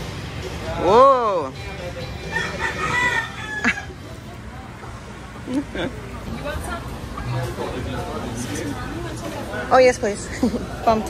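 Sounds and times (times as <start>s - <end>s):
rooster crowing: 2.2s - 4.0s.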